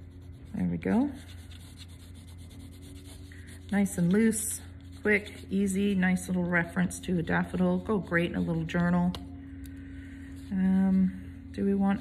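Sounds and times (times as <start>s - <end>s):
pencil scratching on paper: 0.0s - 5.9s
low background hum: 0.0s - 12.0s.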